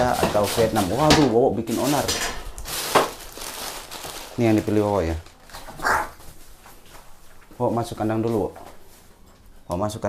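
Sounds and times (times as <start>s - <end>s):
crow cawing: 5.7s - 6.2s.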